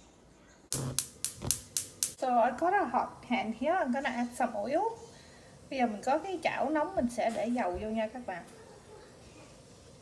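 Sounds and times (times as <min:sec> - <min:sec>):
gas burner spark igniter clicking: 0:00.7 - 0:02.2.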